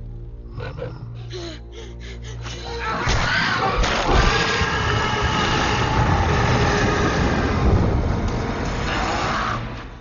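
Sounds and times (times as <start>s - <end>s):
dragon roar: 3.2s - 8.0s, 8.8s - 9.9s.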